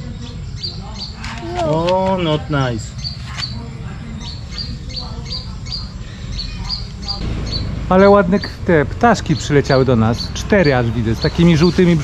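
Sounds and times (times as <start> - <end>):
small bird chirping: 0.0 - 11.8
steady low rumble: 7.2 - 9.2.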